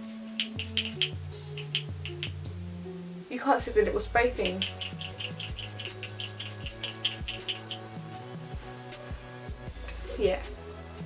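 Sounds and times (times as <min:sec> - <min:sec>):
background music with bass and beat: 0:00.3 - 0:02.9, 0:03.6 - 0:11.0.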